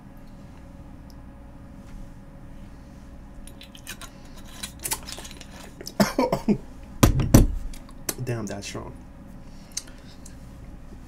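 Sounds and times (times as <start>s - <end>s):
man coughing: 5.9s - 6.6s.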